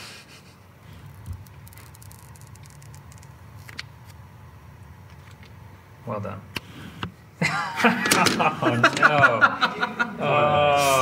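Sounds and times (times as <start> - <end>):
protective film peeling crackles: 1.0 - 4.2.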